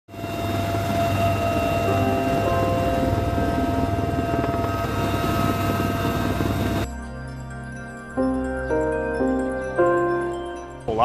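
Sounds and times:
helicopter engine and rotor noise: 0.1s - 8.0s.

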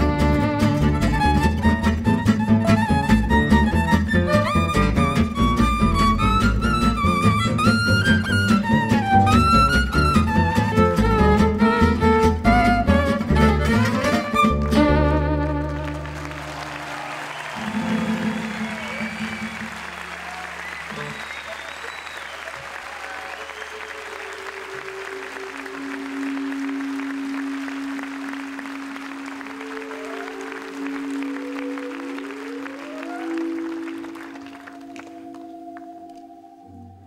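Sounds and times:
audience applauding: 0.0s - 36.4s
sustained instrument notes: 24.0s - 37.0s.

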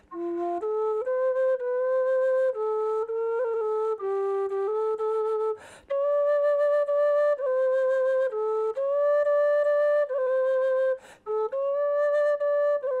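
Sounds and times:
wooden flute solo melody: 0.0s - 13.0s.

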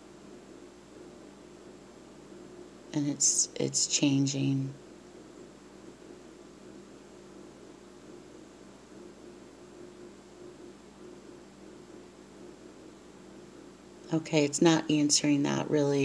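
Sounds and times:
faint even hum: 0.0s - 16.0s
low steady hiss: 0.0s - 16.0s.

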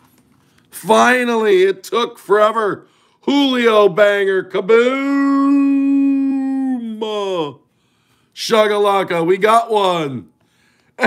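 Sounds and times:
man yelling: 0.8s - 7.6s.

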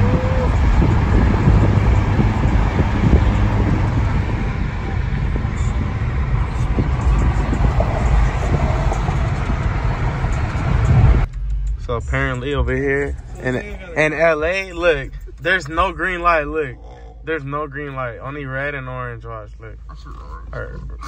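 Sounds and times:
car road and engine noise: 0.0s - 21.0s.

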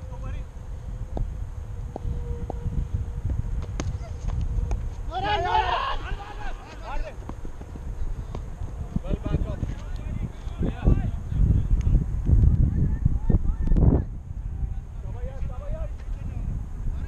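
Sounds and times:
wind rumble on microphone: 0.0s - 17.0s
players shouting loudly: 5.1s - 7.2s.

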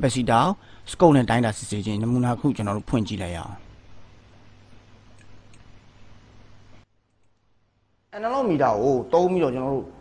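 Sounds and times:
faint microphone hiss: 0.0s - 10.0s
low mains hum: 0.0s - 10.0s.

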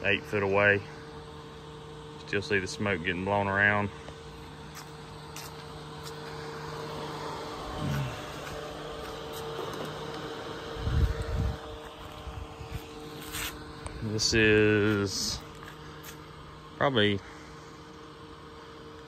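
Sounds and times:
fan humming with rushing air: 0.0s - 19.0s.

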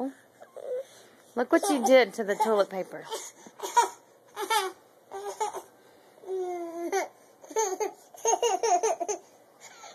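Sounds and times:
toddler laughing: 6.4s - 9.9s.

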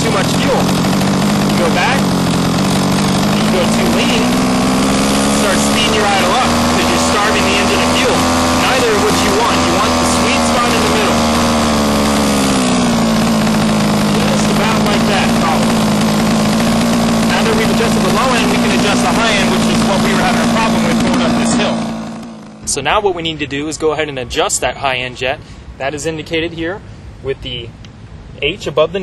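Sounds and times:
small two-stroke engine idling: 0.0s - 22.9s.

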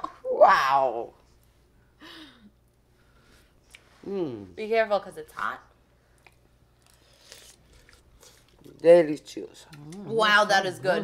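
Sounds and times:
woman speaking: 4.6s - 5.7s, 9.8s - 11.0s.

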